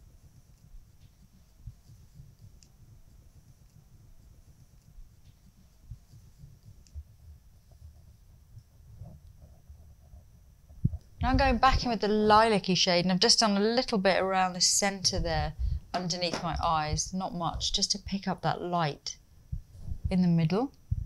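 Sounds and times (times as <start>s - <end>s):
microphone thuds and rubbing: 4.9s - 12.5s, 15.0s - 17.8s, 19.5s - 20.2s.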